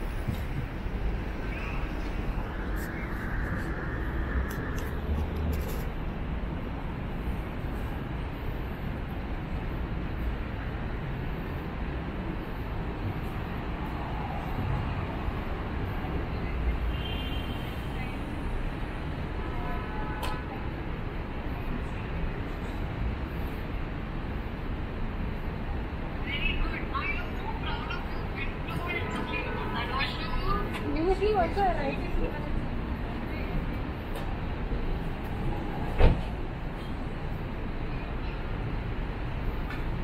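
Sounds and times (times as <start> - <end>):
traffic rumble: 0.0 - 40.0
voices of passersby: 0.0 - 40.0.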